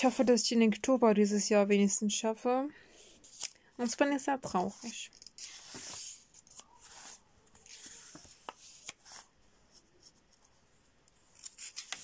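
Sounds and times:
paper rustling: 0:04.4 - 0:10.5, 0:11.3 - 0:12.0.

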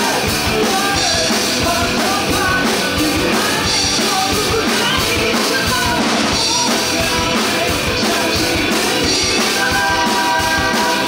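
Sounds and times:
drum kit: 0:00.0 - 0:11.0
electric guitar: 0:00.0 - 0:11.0
person singing: 0:00.0 - 0:11.0
rock band playing: 0:00.0 - 0:11.0.

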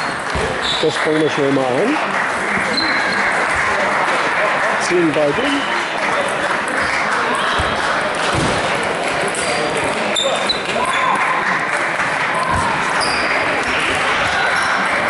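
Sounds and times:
babble of voices: 0:00.0 - 0:15.0.

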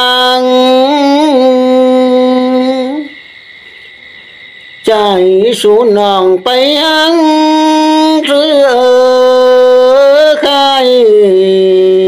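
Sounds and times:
person singing folk song: 0:00.0 - 0:03.2, 0:04.8 - 0:12.0.

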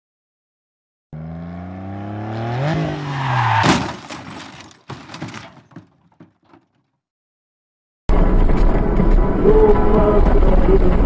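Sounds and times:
car engine revving: 0:01.2 - 0:03.5
loud crash: 0:03.6 - 0:05.8
scattered clattering: 0:03.6 - 0:06.7.

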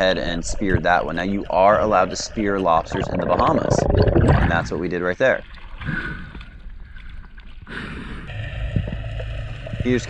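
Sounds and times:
muffled underwater rumble: 0:00.0 - 0:10.0.

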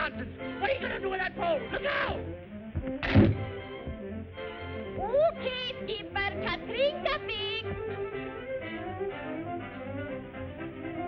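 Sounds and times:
orchestral cartoon music: 0:00.0 - 0:11.0
loud thunk: 0:02.8 - 0:04.0.

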